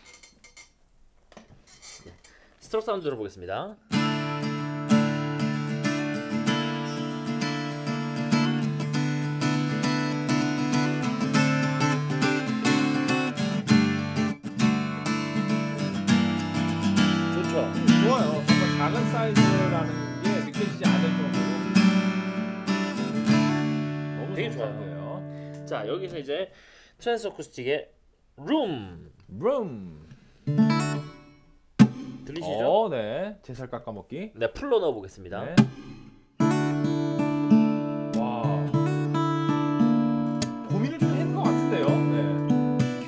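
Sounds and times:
acoustic guitar strummed: 3.9s - 26.2s, 30.5s - 32.6s, 35.6s - 43.0s.

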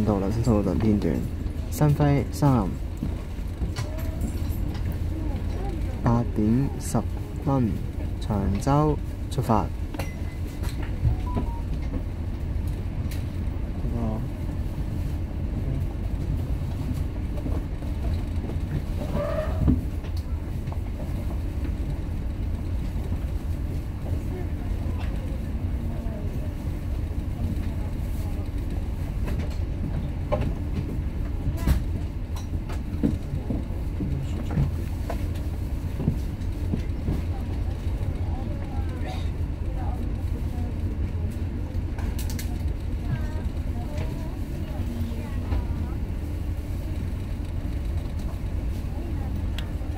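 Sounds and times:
faint passenger voices: 0.0s - 49.9s
ferry engines idling: 0.0s - 49.9s.

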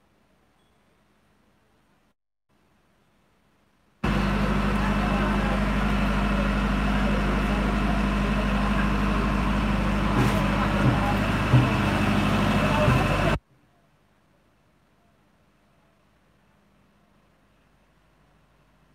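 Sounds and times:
engine drone: 4.0s - 13.4s.

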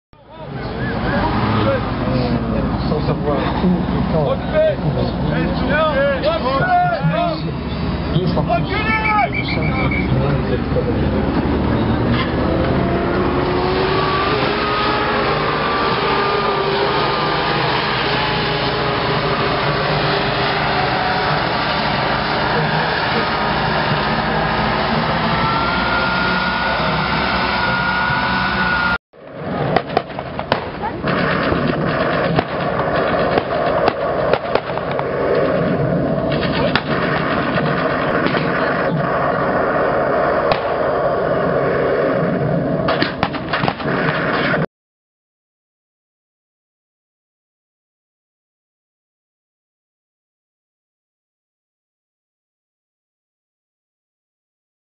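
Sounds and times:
distant engine: 0.2s - 44.6s
tank engine running: 0.3s - 44.6s.

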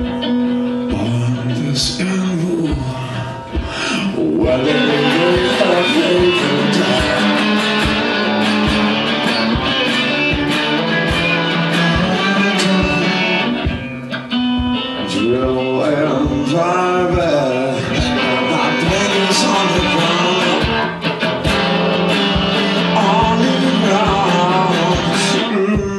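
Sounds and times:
resonator guitar blues-rock: 0.0s - 25.9s
man singing: 0.8s - 13.9s, 14.7s - 25.9s
steady low beat: 0.9s - 25.9s.

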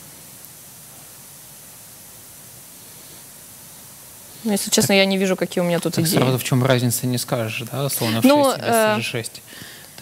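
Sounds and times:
steady recording hiss: 0.0s - 10.0s.

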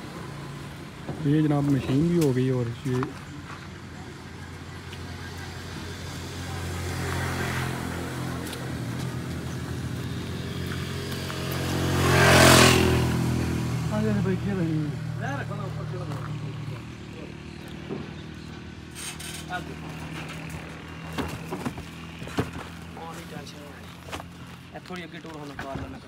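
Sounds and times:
vehicle passing close by: 5.4s - 18.9s.

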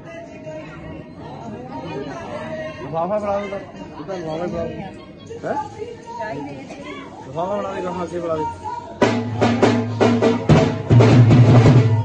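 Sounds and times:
overlapping chatter of people: 0.0s - 12.0s.

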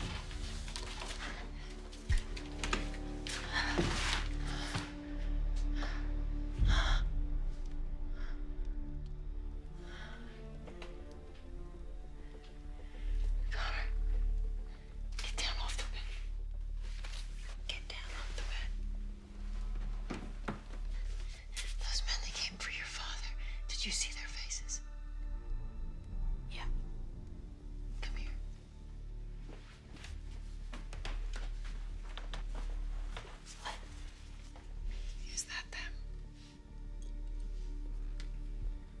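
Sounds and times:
woman whispering: 15.2s - 16.4s, 17.4s - 18.8s, 21.6s - 24.8s, 26.5s - 26.8s, 27.9s - 28.6s, 33.5s - 34.1s, 35.2s - 36.1s.

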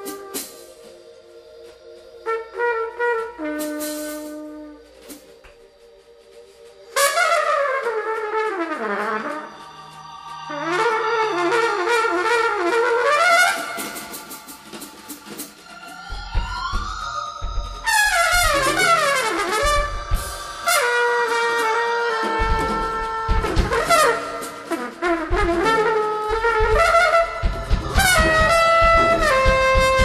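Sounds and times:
trumpet solo: 0.0s - 1.0s, 2.2s - 5.4s, 6.9s - 15.5s, 17.8s - 30.0s
drums: 0.0s - 8.0s, 12.3s - 30.0s.

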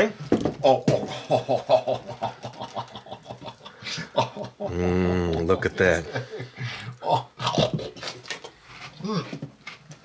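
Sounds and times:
person humming: 4.7s - 5.4s.

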